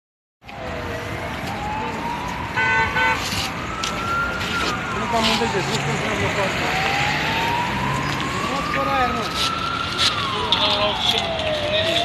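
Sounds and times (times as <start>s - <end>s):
siren wailing: 0.4s - 12.0s
street bustle: 0.4s - 12.0s
voices: 4.8s - 12.0s.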